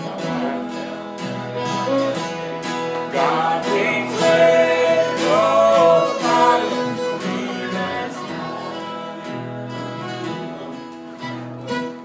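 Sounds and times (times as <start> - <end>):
acoustic guitars strumming: 0.0 - 12.0
voices singing gospel song: 2.8 - 9.9.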